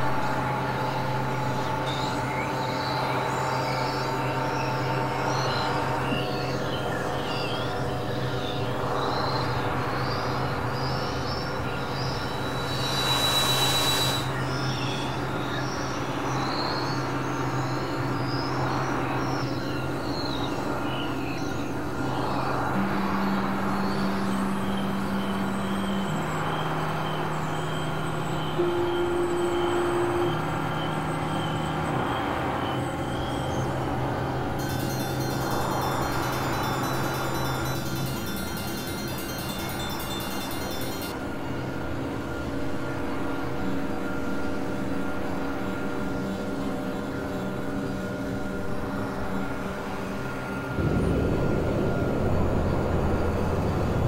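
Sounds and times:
electronic drone music: 11.3s - 15.5s, 21.9s - 41.5s.

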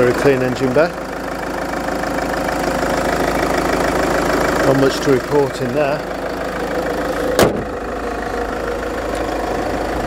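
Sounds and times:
diesel engine idling: 0.0s - 10.0s
car bonnet slammed shut: 7.3s - 7.8s.

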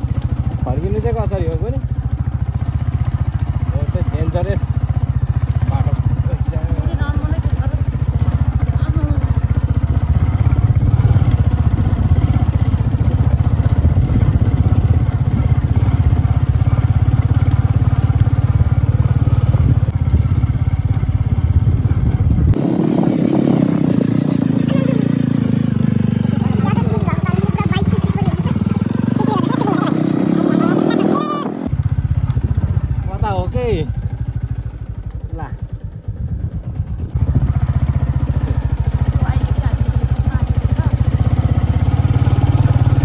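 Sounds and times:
motorcycle engine running: 0.0s - 43.0s.

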